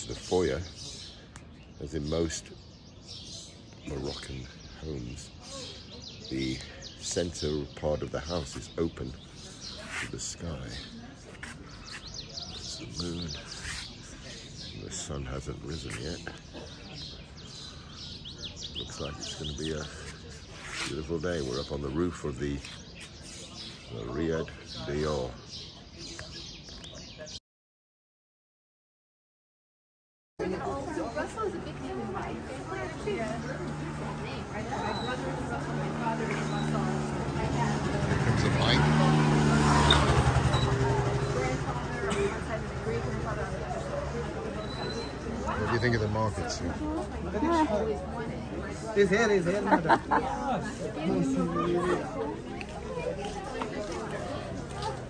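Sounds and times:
crowd chatter: 0.0s - 27.4s, 30.4s - 55.0s
small birds chirping: 0.0s - 27.4s, 30.4s - 55.0s
small motorbike engine passing: 31.6s - 47.2s.

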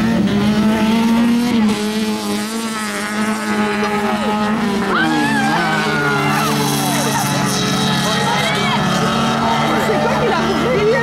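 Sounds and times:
race car engines accelerating: 0.0s - 11.0s.

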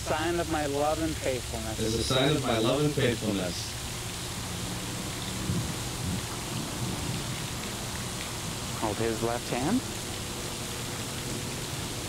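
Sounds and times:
man's voice: 0.0s - 3.8s
steady background hiss: 0.0s - 12.0s.

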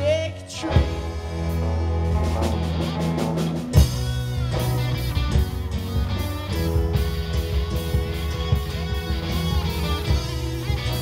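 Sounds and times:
bass guitar notes: 0.0s - 11.0s
drum kit: 0.0s - 11.0s
electric guitars: 0.0s - 11.0s.

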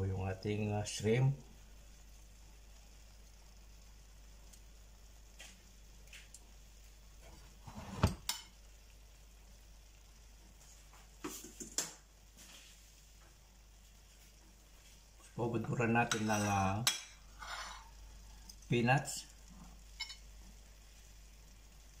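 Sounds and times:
faint steady hum: 0.0s - 22.0s
metal tongs tapping on plate: 16.1s - 17.2s, 20.0s - 20.2s.

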